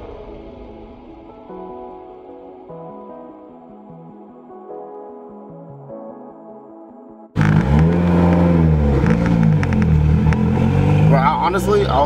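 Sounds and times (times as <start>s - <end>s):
exhaust crackles: 7.4s - 12.0s
turbo car engine accelerating: 7.4s - 12.0s.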